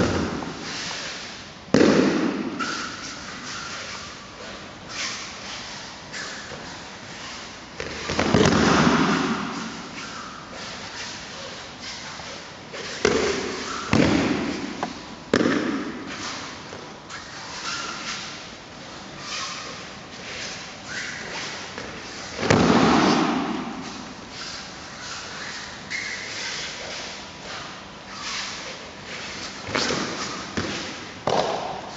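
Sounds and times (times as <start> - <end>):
sharp slap on mat: 1.8 - 2.6.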